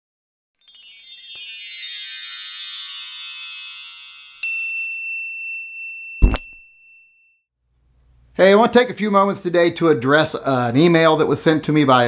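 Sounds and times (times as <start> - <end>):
high sparkling shimmer: 0.6 - 5.1
bright ringing ding: 5.0 - 7.4
deep thump: 6.2 - 6.6.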